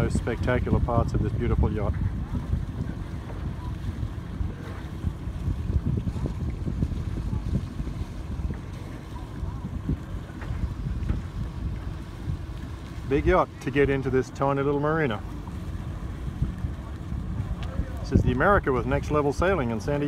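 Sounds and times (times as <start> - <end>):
low uneven engine rumble: 0.0 - 20.0
wind buffeting microphone: 0.0 - 20.0.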